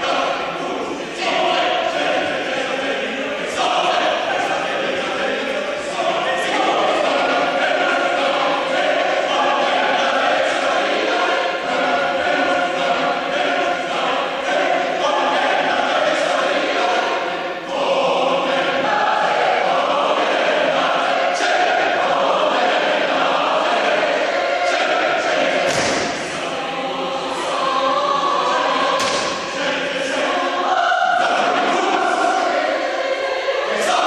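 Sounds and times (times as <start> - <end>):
choir singing: 0.0 - 34.0.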